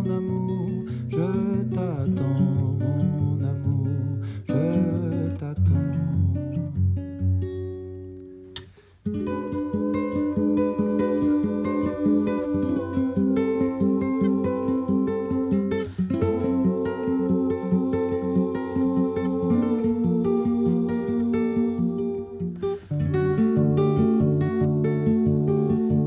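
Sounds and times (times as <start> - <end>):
classical guitar strumming: 0.0 - 26.0
acoustic band music: 5.9 - 26.0.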